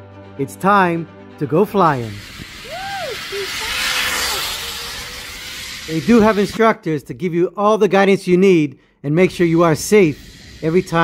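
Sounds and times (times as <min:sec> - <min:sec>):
short rising and falling tone: 0:01.4 - 0:06.6
zip line trolley hissing on cable: 0:01.7 - 0:06.7, 0:09.2 - 0:11.0.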